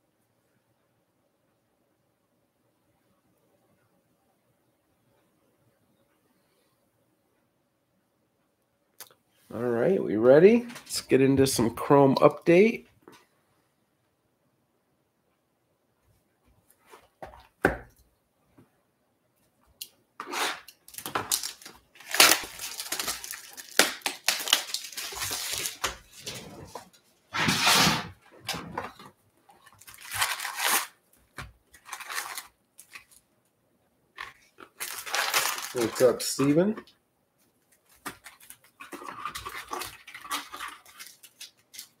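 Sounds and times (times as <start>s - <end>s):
plastic shrink wrap crinkling and tearing: 20.2s - 26.8s, 29.5s - 31.0s, 31.7s - 33.2s, 34.2s - 36.8s, 37.8s - 42.0s
foil card packs being handled: 20.2s - 27.8s, 28.8s - 33.2s, 34.2s - 36.9s, 37.7s - 42.0s.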